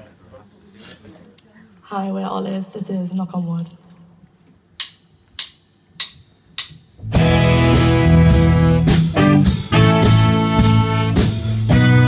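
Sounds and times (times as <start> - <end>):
drummer count-in clicks: 4.8 - 6.9.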